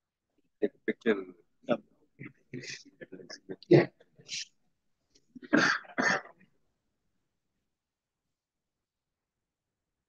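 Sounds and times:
person coughing: 5.4s - 6.4s.

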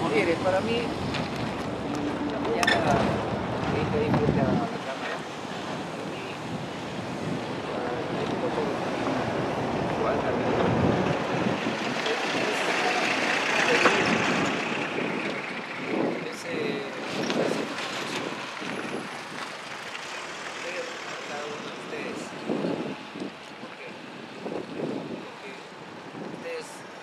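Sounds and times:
road vehicle passing: 0.0s - 27.0s
wind on microphone: 0.0s - 27.0s
man talking: 2.2s - 5.2s, 7.6s - 9.0s, 12.0s - 14.2s, 16.2s - 18.4s, 20.6s - 22.4s, 25.2s - 25.7s, 26.4s - 26.8s.

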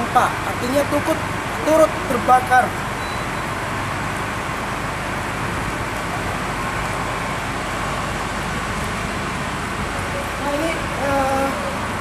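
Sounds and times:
engine and traffic rumble: 0.0s - 12.0s.

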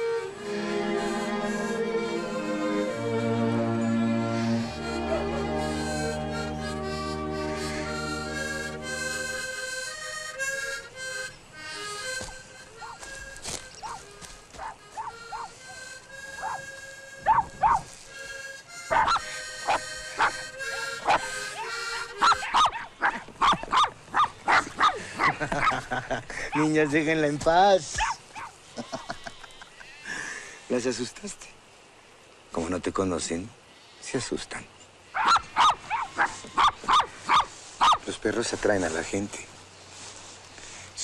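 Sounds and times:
small dogs barking: 12.8s - 13.0s, 13.8s - 15.6s, 16.4s - 16.6s, 17.2s - 17.9s, 18.8s - 25.8s, 28.0s - 28.6s, 35.1s - 38.1s.

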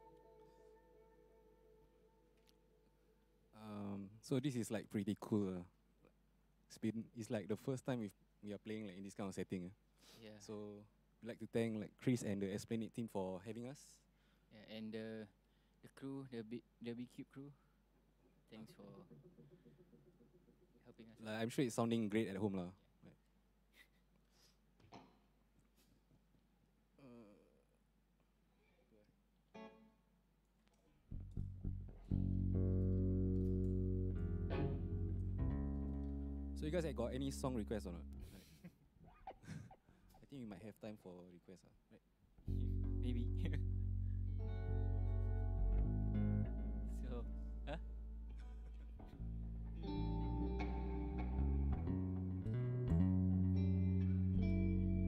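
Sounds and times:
faint held musical drone: 0.0s - 4.3s, 31.4s - 38.4s, 42.5s - 55.0s
plucked electric guitar note: 31.1s - 38.3s, 42.5s - 55.0s.

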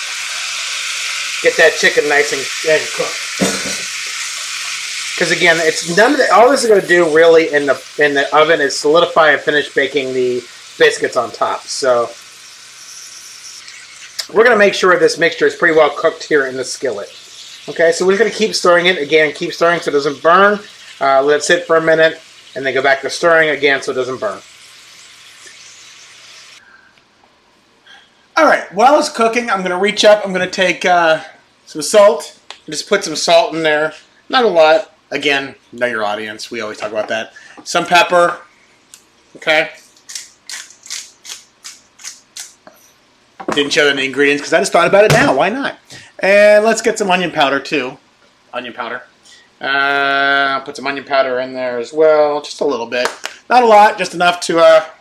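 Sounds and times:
food sizzling in a skillet: 0.0s - 26.6s.

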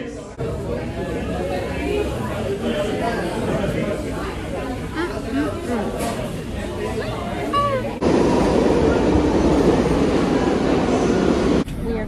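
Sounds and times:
subway train rumbling on rails: 0.2s - 12.0s.

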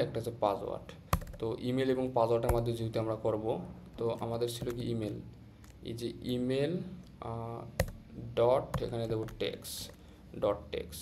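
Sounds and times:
man speaking: 0.0s - 11.0s
computer keyboard keystroke: 1.1s - 1.5s, 4.6s - 5.8s, 7.8s - 8.0s, 8.7s - 10.0s.

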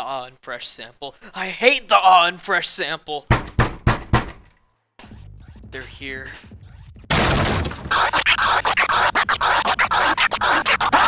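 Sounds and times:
distorted glitch noise stuttering: 6.8s - 11.0s.

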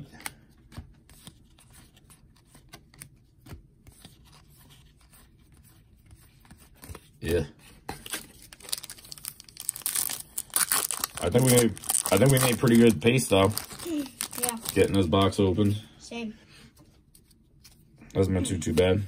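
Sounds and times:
foil wrapper crinkling and tearing: 8.0s - 15.1s.

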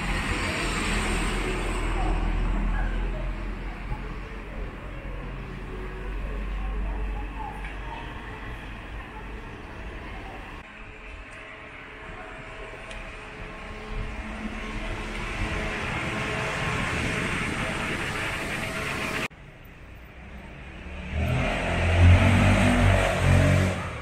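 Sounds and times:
deep engine rumble: 0.0s - 24.0s
vehicle passing: 20.2s - 24.0s.

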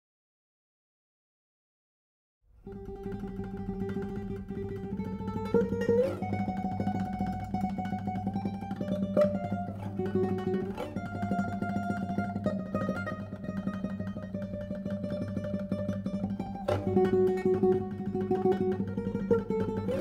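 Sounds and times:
fingerstyle classical guitar: 2.6s - 20.0s.

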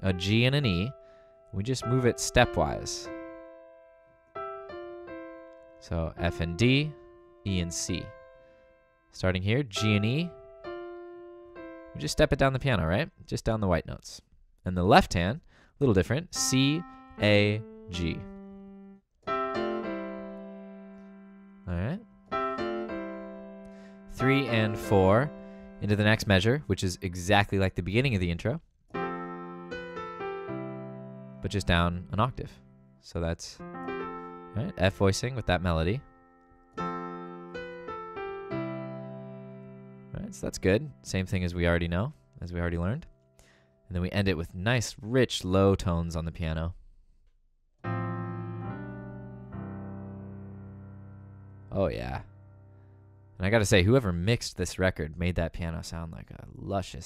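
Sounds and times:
piano notes and chords: 0.0s - 13.4s, 15.9s - 28.2s, 28.9s - 44.5s, 47.8s - 54.1s.

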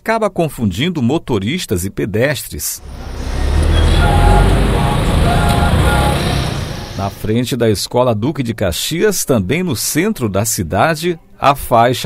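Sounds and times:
vehicle engine rumble passing: 2.8s - 7.3s.

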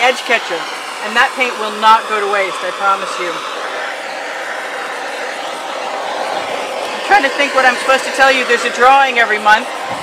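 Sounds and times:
butane torch hissing: 0.0s - 10.0s.

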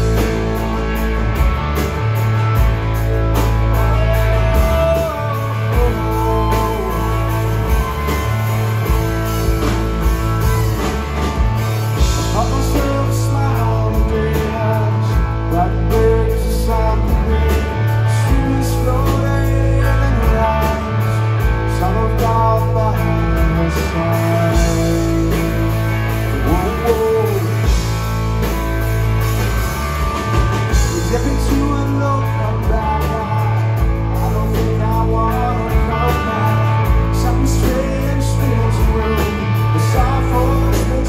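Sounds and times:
bass guitar: 0.0s - 41.0s
drum kit: 0.0s - 41.0s
electric guitar: 0.0s - 41.0s
man singing: 3.0s - 11.2s, 11.8s - 28.1s, 30.6s - 41.0s.

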